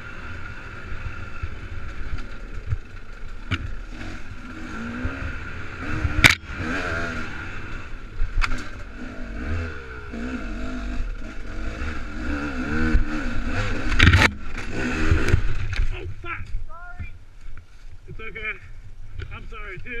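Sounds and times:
dirt bike engine revving: 0.0s - 16.2s.

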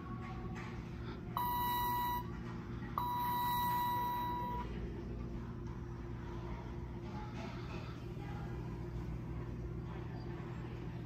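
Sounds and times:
elevator signal beeps: 1.4s - 2.3s, 3.0s - 4.8s.

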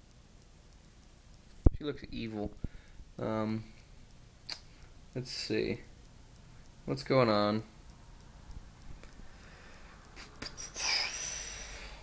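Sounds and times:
person sighing: 10.4s - 12.0s.

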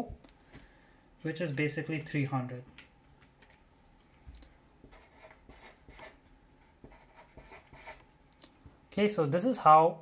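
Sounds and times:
marker writing on paper: 4.8s - 8.0s.

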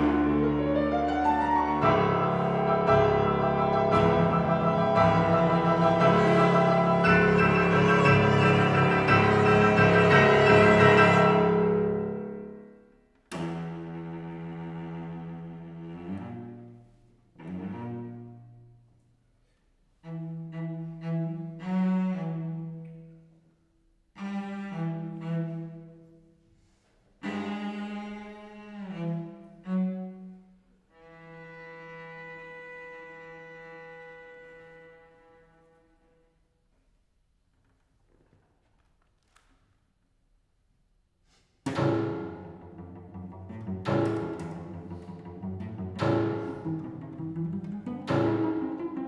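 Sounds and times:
cello bowed notes: 0.0s - 19.0s, 19.9s - 23.3s, 24.1s - 26.4s, 27.2s - 36.5s, 41.6s - 49.0s.

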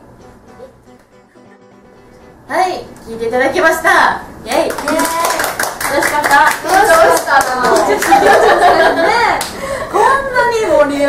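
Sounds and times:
women clapping hands: 4.5s - 8.5s.

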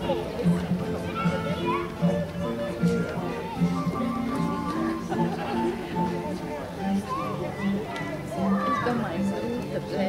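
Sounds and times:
children's voices and chatter: 0.0s - 10.0s
live folk dance music: 0.0s - 10.0s.

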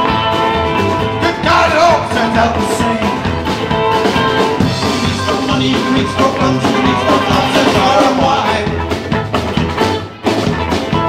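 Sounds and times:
live band playing country rock: 0.0s - 11.0s.

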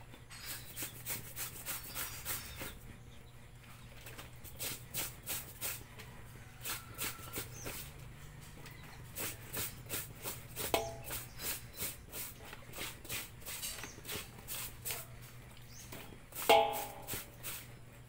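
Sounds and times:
wet fabric scrubbed by hand: 9.1s - 15.0s.

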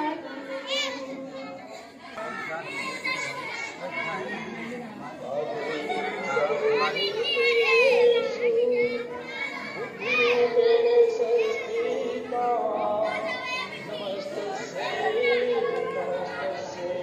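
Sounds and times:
children chattering and calling out: 0.0s - 17.0s.

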